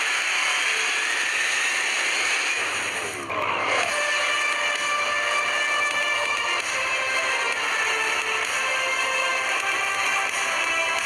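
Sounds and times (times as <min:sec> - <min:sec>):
held musical tones: 0:03.2 - 0:11.0.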